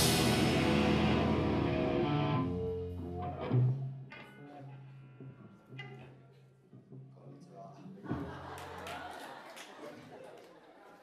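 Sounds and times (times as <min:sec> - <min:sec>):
live rock band: 0:00.0 - 0:04.4.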